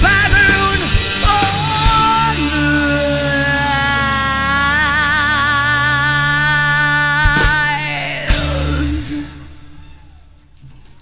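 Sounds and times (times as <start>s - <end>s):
low bass tone: 0.0s - 10.7s
rock band sustained note: 0.0s - 11.0s.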